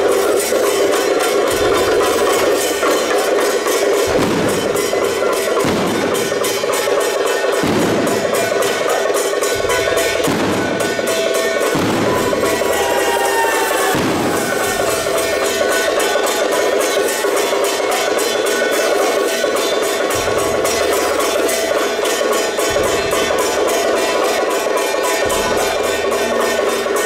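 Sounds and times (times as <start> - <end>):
deep drum strokes: 0.0 - 16.3
drums: 0.0 - 27.0
gongs: 0.0 - 27.0
hand cymbals: 0.0 - 27.0.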